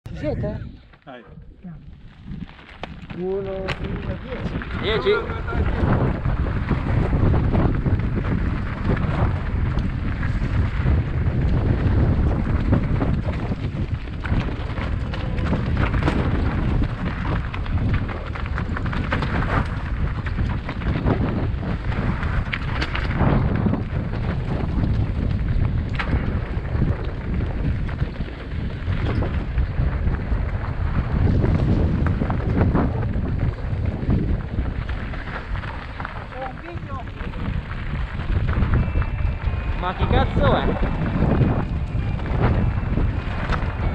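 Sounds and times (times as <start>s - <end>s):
wind on microphone: 0.1s - 43.9s
tyres crunching over stones: 1.8s - 43.9s
bike clattering on rocks: 5.8s - 39.6s.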